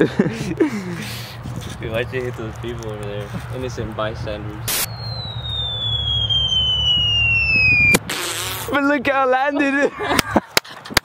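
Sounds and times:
low steady rumble: 2.7 - 8.0
falling whistle: 4.7 - 8.0.

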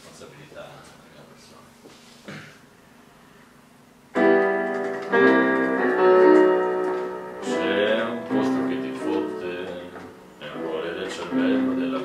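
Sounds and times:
digital piano chords: 4.1 - 12.0.

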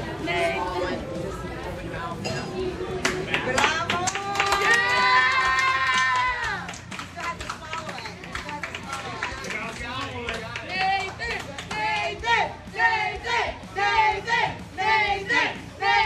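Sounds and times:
restaurant crowd voices: 0.0 - 16.0.

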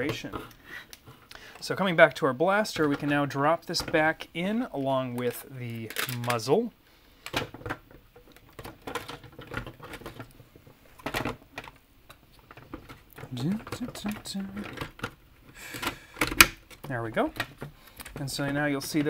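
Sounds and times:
plastic parts clicking and knocking: 0.0 - 19.0.

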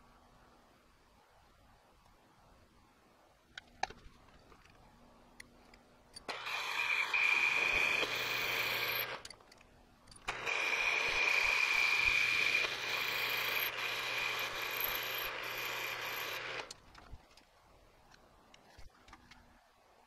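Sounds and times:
milling machine spindle whine: 6.3 - 9.2, 10.3 - 16.7
metal cutting noise: 6.3 - 9.3, 10.2 - 16.8.

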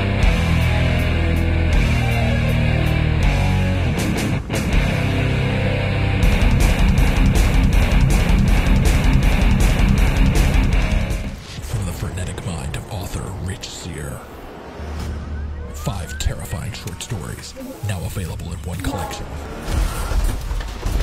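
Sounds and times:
heavy rock music with guitar: 0.0 - 11.4.

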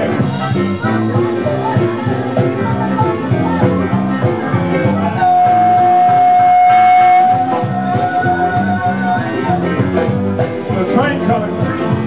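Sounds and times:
blues-rock band playing: 0.0 - 12.0
harmonica holding high note: 0.3 - 10.6.

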